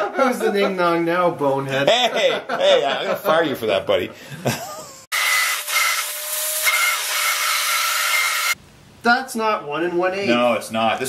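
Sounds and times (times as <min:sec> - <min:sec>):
small electric motor whining: 0:05.1 - 0:08.6.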